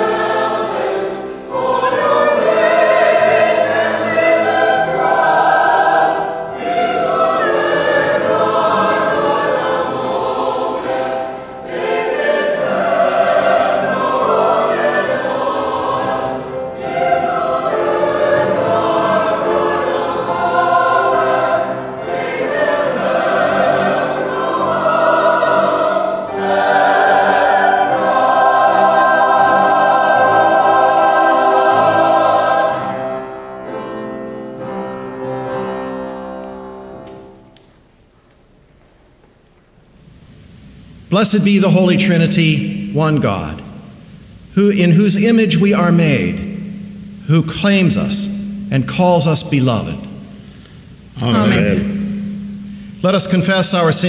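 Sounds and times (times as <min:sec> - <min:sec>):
choir singing sacred music: 0:00.0 - 0:37.6, 0:40.0 - 0:54.0.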